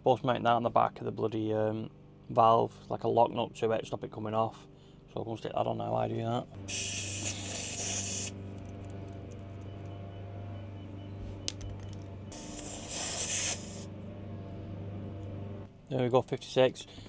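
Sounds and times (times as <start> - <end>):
air hissing from tyre valve: 6.7 - 8.4, 12.3 - 13.9
faint high beeps: 9.4 - 12.3.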